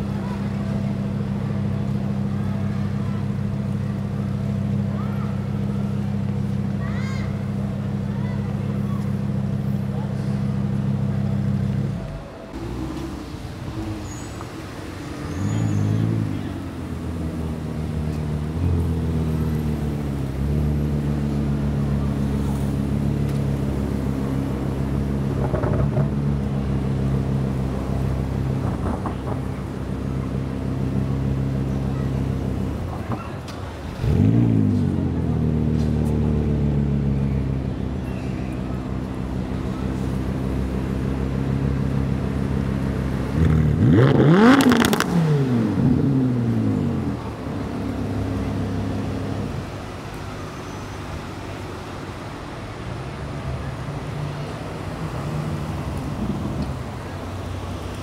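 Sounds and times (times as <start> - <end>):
car engine running: 0.0 - 50.6.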